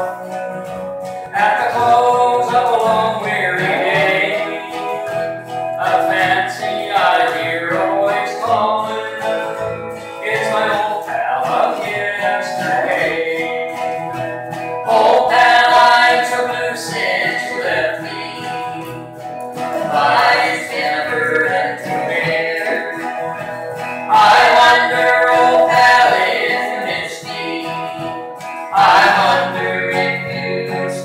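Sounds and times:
gliding lead melody: 0.0s - 31.0s
strummed acoustic guitar: 0.0s - 31.0s
upright bass: 0.0s - 31.0s.

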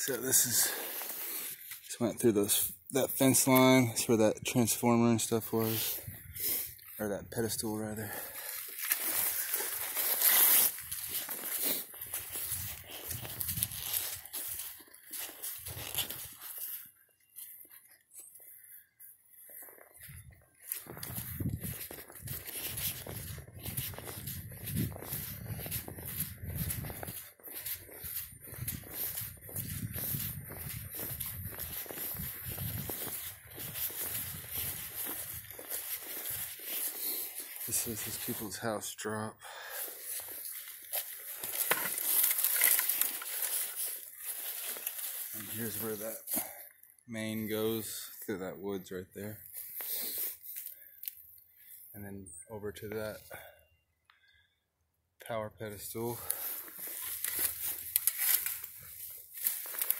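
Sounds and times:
footsteps on dry leaves: 0.0s - 1.9s, 4.7s - 38.9s, 39.5s - 48.2s, 49.2s - 51.1s, 55.9s - 59.9s.

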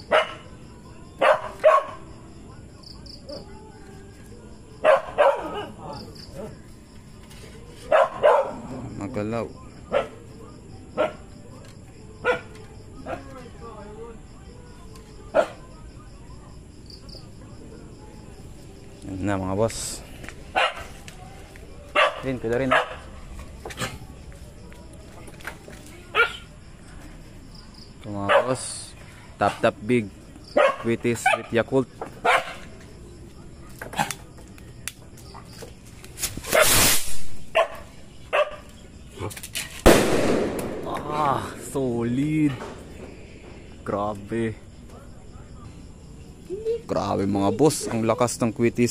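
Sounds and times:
dog barking: 0.0s - 0.5s, 1.2s - 2.1s, 4.8s - 5.9s, 7.9s - 8.7s, 9.9s - 10.2s, 11.0s - 11.3s, 12.2s - 13.2s, 15.3s - 15.6s, 20.5s - 20.9s, 21.9s - 23.1s, 26.1s - 26.5s, 28.2s - 28.6s, 30.5s - 31.5s, 32.2s - 32.7s, 37.5s - 38.7s
bottle rocket launching hiss: 36.2s - 37.4s
firework bang: 36.4s - 37.4s, 39.8s - 41.8s.

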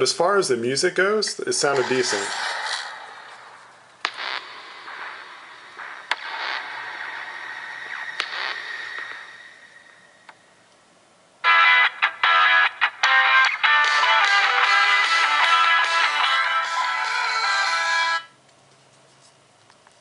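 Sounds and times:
soft swelling noise: 1.6s - 10.6s
loud music from phone speaker: 1.8s - 9.4s, 11.4s - 18.3s
sharp clicks: 3.9s - 5.2s, 5.8s - 7.2s, 7.8s - 9.1s.

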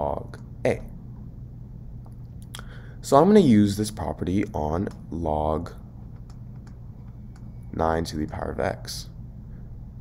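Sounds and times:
low steady hum: 0.0s - 10.0s
person speaking: 2.5s - 9.2s.

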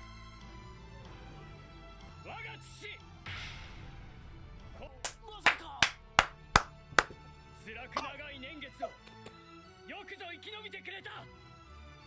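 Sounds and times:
soft background music: 0.0s - 12.0s
sharp hand claps: 5.0s - 7.2s.

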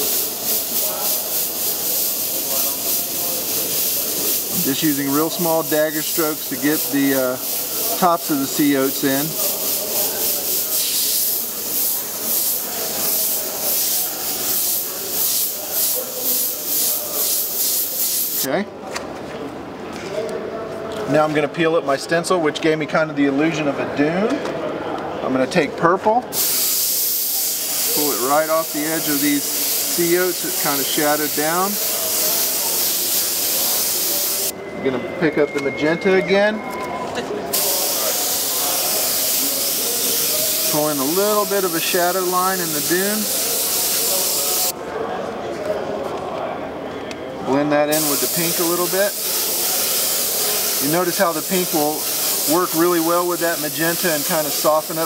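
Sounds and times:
airbrush hissing in bursts: 0.0s - 18.5s, 26.4s - 34.5s, 37.5s - 44.7s, 47.9s - 55.0s.

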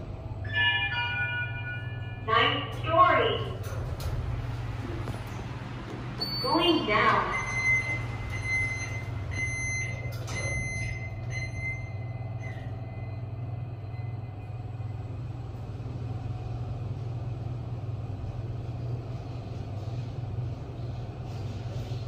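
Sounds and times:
lift car low hum: 0.0s - 22.0s.

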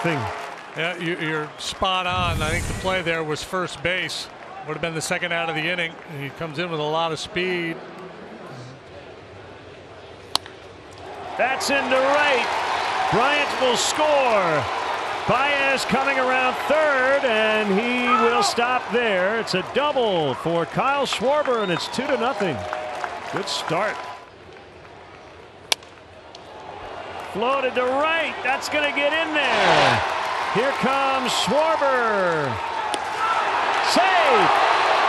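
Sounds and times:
crowd noise: 2.1s - 3.9s, 28.0s - 31.3s.

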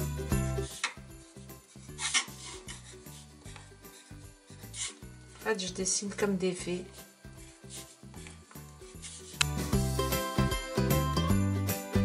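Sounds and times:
soft background music: 0.0s - 12.0s
pencil scratching on paper: 0.3s - 5.4s, 6.9s - 9.7s.

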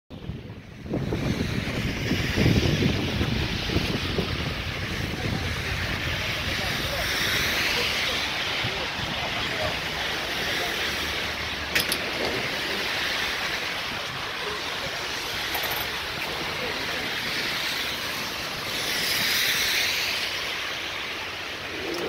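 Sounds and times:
city traffic: 0.1s - 22.0s
rush of wind: 0.1s - 22.0s
wind buffeting microphone: 0.1s - 22.0s.

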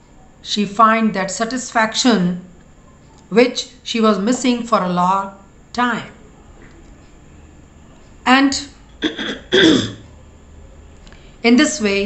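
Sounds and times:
woman coughing: 9.0s - 10.0s.

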